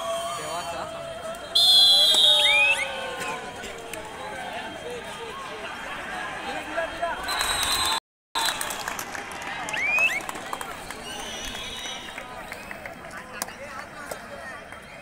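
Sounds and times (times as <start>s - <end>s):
players and spectators shouting: 0.0s - 8.0s
referee's whistle blast: 1.6s - 3.0s.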